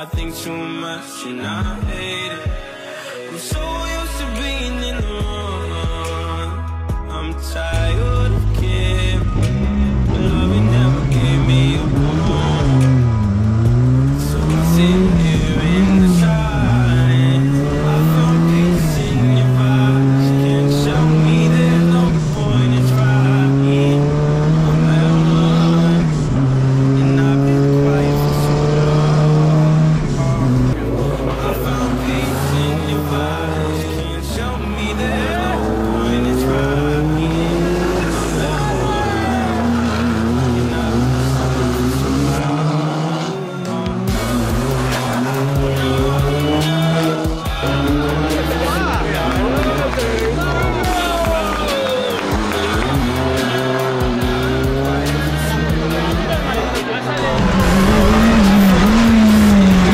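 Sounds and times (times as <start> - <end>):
music with heavy bass: 0.0 - 59.9
rally car engine revving: 7.2 - 59.9.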